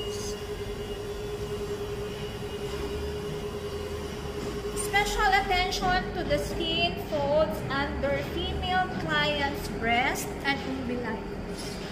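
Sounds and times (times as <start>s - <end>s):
mid-pitched drone: 0.0s - 6.5s
steady background hum: 0.0s - 11.9s.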